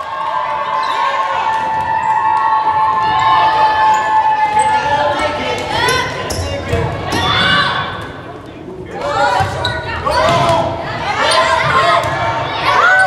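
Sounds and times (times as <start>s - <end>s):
players calling out: 0.7s - 13.0s
sneakers squeaking on court: 9.4s - 10.6s.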